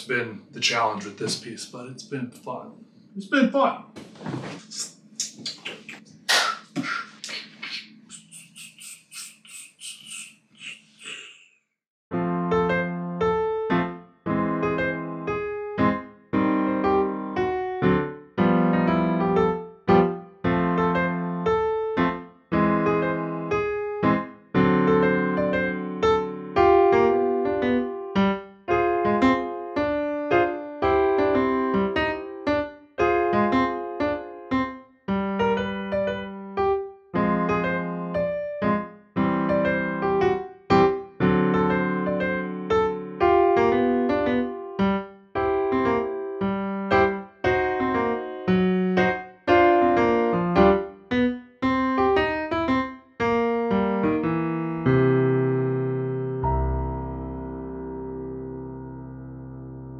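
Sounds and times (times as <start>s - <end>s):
jazzy digital piano: 12.1s - 59.9s.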